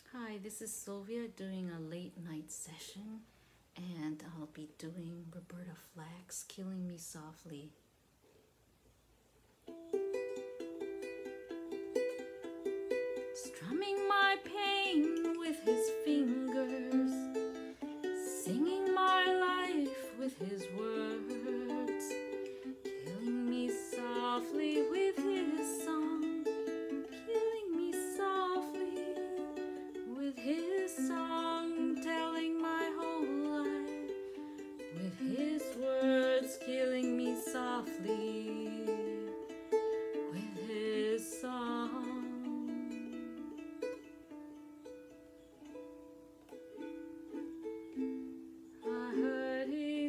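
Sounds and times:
ukulele picking chords: 9.6s - 50.0s.

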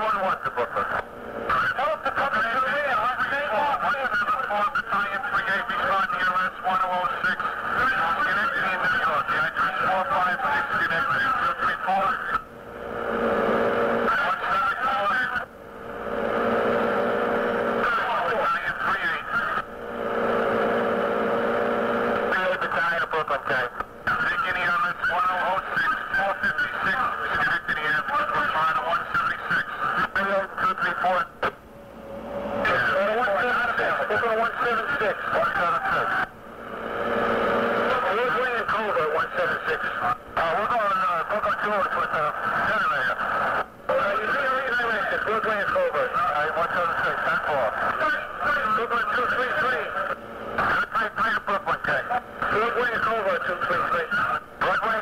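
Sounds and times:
garbled two-way radio voices: 0.0s - 12.5s, 14.0s - 15.5s, 17.7s - 19.8s, 22.2s - 31.6s, 32.6s - 36.4s, 37.8s - 55.0s
radio transmission hum: 0.0s - 55.0s.

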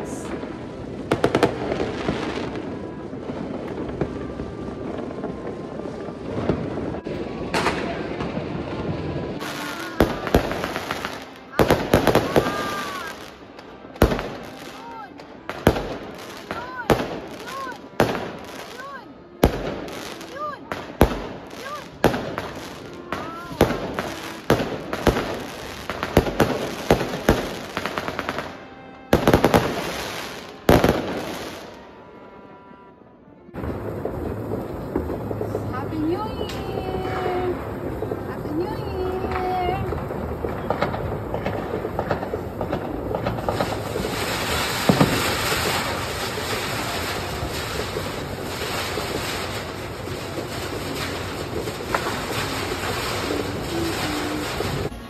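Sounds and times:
fireworks bangs and crackles: 0.0s - 32.1s, 33.5s - 55.0s.

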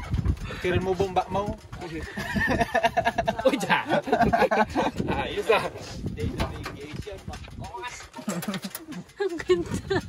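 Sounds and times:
people talking: 0.6s - 10.0s.

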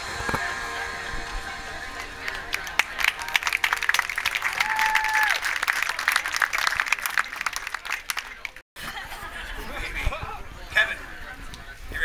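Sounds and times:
audience applauding: 2.0s - 8.6s.

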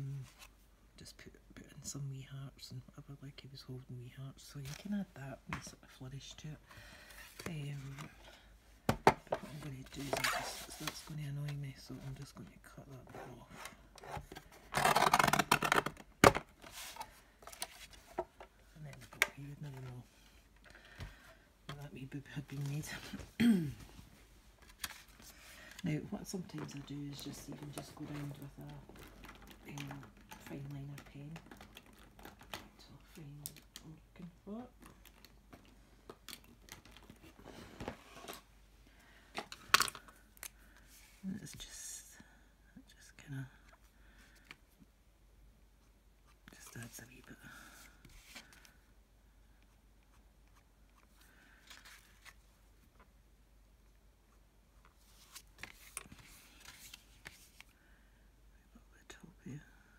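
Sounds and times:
card rustling and clicking: 24.6s - 33.9s, 54.8s - 57.7s.

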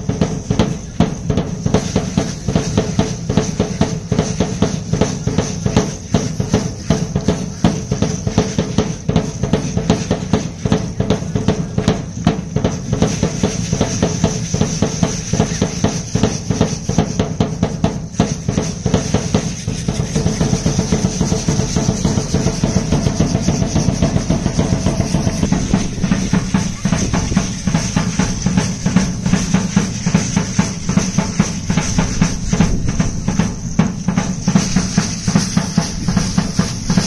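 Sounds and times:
dance drum beating fast: 0.0s - 37.0s
hand rattles shaking: 13.0s - 37.0s.

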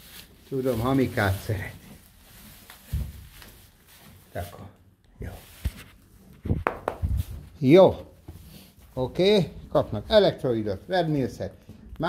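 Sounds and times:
faint rustling: 0.0s - 12.0s.

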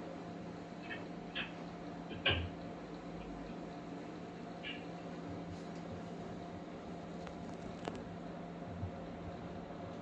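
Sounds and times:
low electrical hum and hiss: 0.0s - 10.0s.

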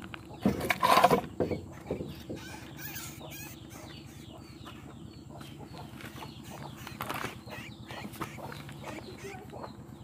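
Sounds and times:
faint short chirping calls: 1.4s - 10.0s.

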